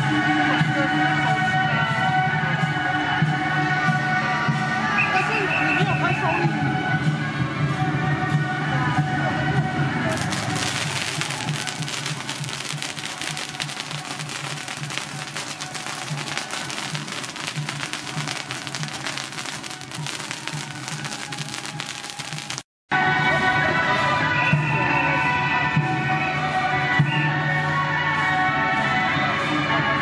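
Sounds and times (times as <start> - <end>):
music: 0.0 - 30.0
firecrackers crackling: 10.1 - 22.7.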